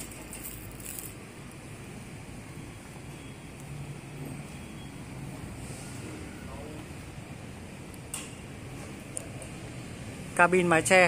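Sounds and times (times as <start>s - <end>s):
plastic wrap rustling: 0.0s - 1.2s.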